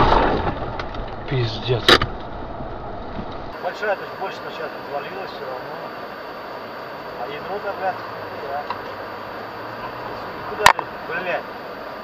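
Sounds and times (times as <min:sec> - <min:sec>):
car engine hum: 0:00.0 - 0:12.0
road noise: 0:00.0 - 0:12.0
voice: 0:01.3 - 0:02.0, 0:03.6 - 0:05.9, 0:07.2 - 0:09.0, 0:10.2 - 0:11.5.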